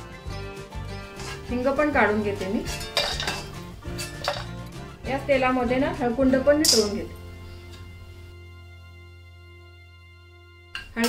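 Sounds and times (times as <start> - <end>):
steel ladle clinking on iron pan: 2.6 - 4.6, 6.6 - 7.1, 10.8 - 11.0.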